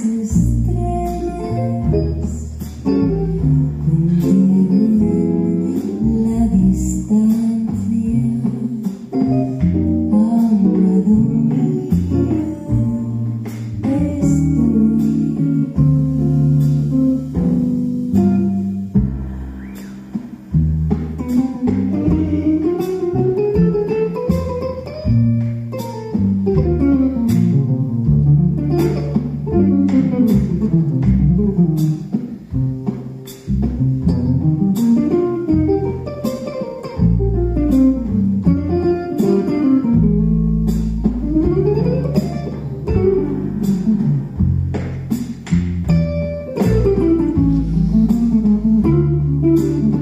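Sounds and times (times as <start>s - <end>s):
drums with cymbal strikes: 0.0s - 50.0s
jazz electric guitar solo: 0.0s - 50.0s
upright bass low notes: 0.0s - 50.0s.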